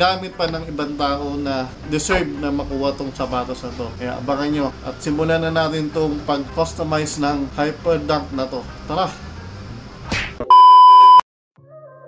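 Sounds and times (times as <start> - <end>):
soft background music: 0.0 - 10.1
high-pitched electronic beep: 10.5 - 11.2.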